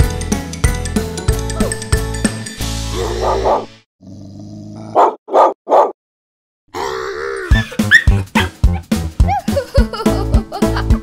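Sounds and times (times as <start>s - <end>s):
soft music: 7.4s - 11.0s.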